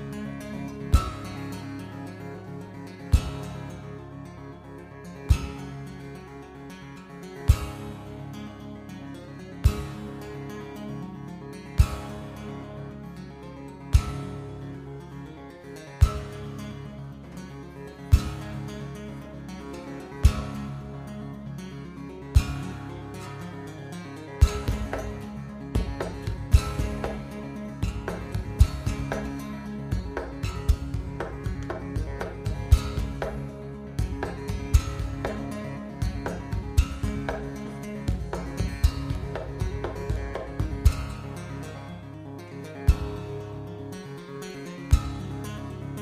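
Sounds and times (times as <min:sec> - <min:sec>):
fingerstyle acoustic guitar: 0:00.0 - 0:46.0.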